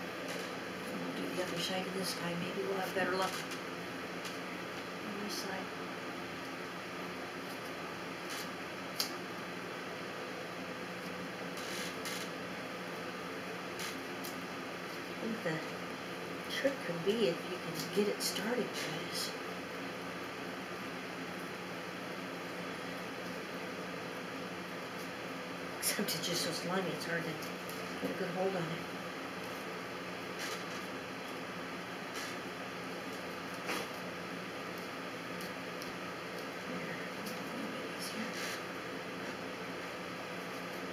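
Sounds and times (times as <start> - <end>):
room noise hum: 0.0 - 40.9.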